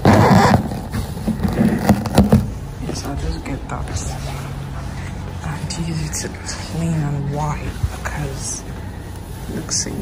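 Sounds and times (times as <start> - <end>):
paper towel rubbing plastic: 0.0 - 2.6.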